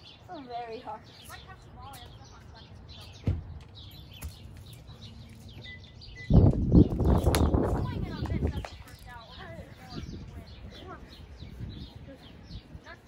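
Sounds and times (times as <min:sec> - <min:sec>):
songbirds chirping: 0:00.0 - 0:13.0.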